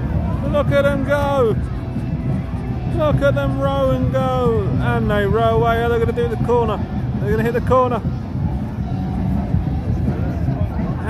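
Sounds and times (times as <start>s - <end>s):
faint voices: 0.0s - 11.0s.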